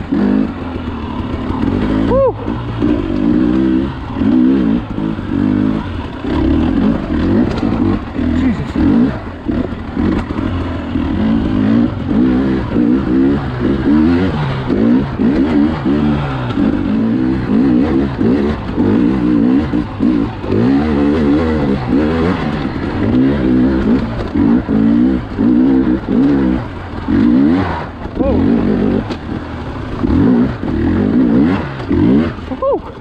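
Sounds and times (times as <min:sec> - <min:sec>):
dirt bike engine revving: 0:00.0 - 0:33.0.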